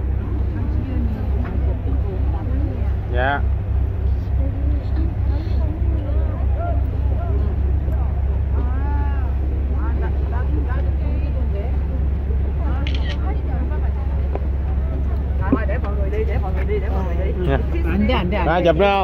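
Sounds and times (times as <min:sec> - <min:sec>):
ferry engine rumble: 0:00.0 - 0:19.0
passengers talking faintly: 0:00.0 - 0:19.0.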